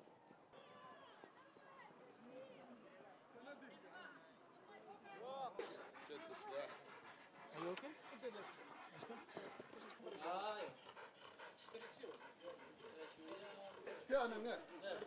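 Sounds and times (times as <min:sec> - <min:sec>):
people's voices: 0:00.5 - 0:15.0
dog panting hard: 0:05.2 - 0:15.0.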